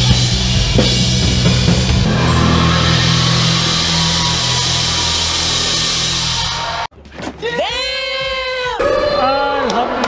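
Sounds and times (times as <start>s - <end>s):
low electric bass notes: 0.0s - 6.9s
rock band sustained chord: 0.0s - 6.9s
cymbals crashing: 0.5s - 6.9s.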